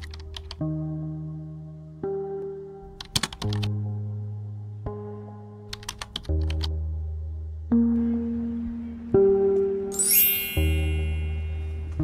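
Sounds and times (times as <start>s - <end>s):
slow background music chords: 0.0s - 12.0s.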